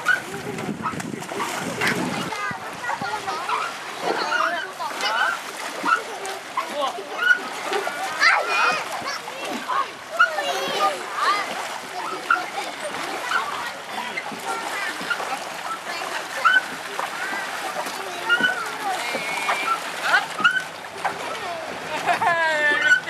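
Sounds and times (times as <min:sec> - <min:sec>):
feet splashing in shallow water: 0:00.0 - 0:23.0
people and children chattering: 0:00.0 - 0:23.0.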